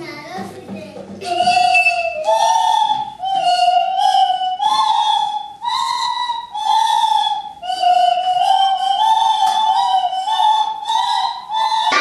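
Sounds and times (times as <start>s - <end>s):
horn pipes playing a tune: 1.2s - 12.0s.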